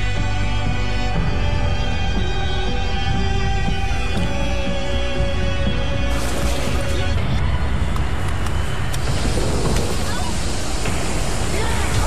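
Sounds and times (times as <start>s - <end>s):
dense low rumble: 3.5s - 12.0s
hiss: 9.0s - 12.0s.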